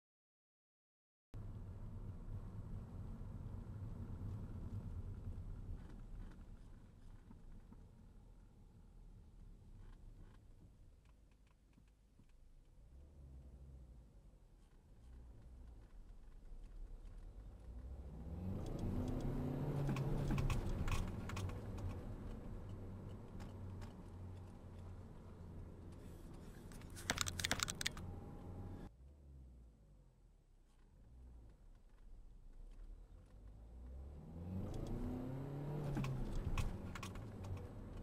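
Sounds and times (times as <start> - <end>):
faint low rumble: 1.4 - 19.5, 27.9 - 35.0
quick sharp clicks: 26.7 - 28.1, 35.9 - 37.7
soft clicks: 26.7 - 28.1.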